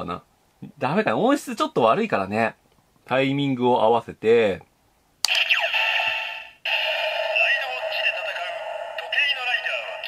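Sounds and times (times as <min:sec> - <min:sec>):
recorded voice over music: 0:07.2 - 0:10.0.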